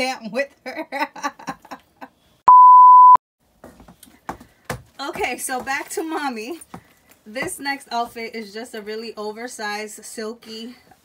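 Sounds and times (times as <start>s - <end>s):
censor bleep: 2.5s - 3.2s.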